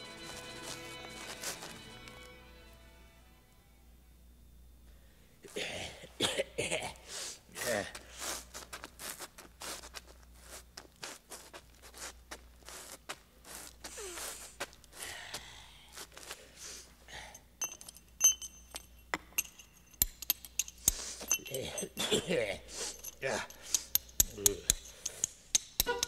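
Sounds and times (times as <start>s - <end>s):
person coughing: 5.5s - 7.9s, 21.5s - 23.5s
hard objects clinking: 17.6s - 26.0s.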